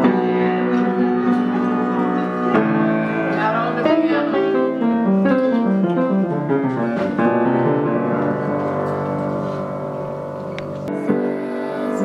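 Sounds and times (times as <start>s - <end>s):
upright piano playing: 0.0s - 12.0s.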